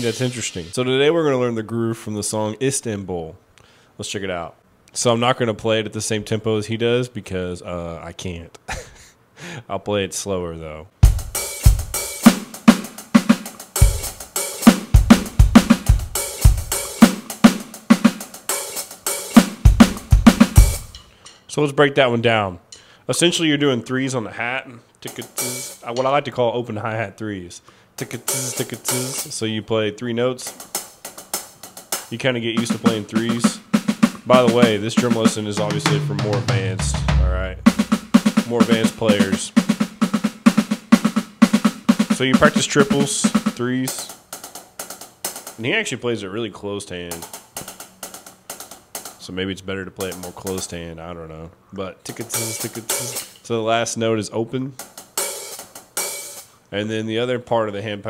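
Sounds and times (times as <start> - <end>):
hi-hat: 0.0 - 0.8, 28.0 - 29.3, 52.2 - 53.4
snare hits: 0.0 - 0.8, 32.6 - 39.2, 52.3 - 53.5
electronic drum strokes: 0.0 - 0.9, 25.2 - 26.1, 28.2 - 29.3, 30.5 - 44.2, 52.2 - 53.5
bass drum kicks: 11.0 - 11.9, 35.6 - 38.1.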